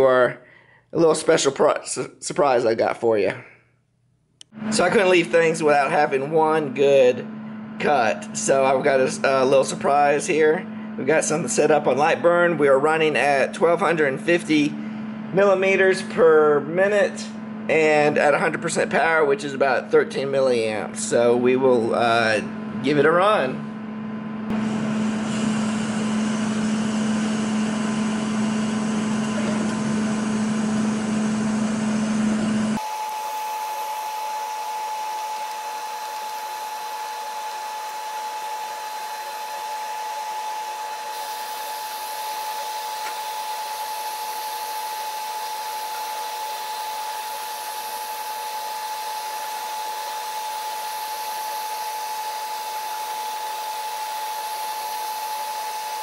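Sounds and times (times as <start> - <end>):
high whine: 4.4 - 45.2
laser cutter fans whirring: 4.6 - 23.6, 24.6 - 56.0.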